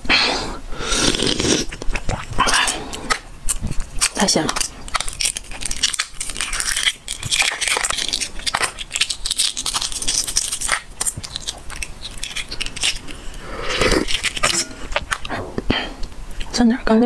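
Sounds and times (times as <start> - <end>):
egg shell cracking and peeling: 0.9 - 15.3.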